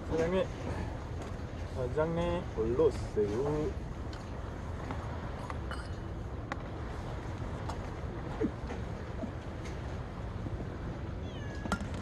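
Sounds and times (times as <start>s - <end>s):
low background rumble: 0.0s - 12.0s
cat meowing: 11.2s - 11.8s.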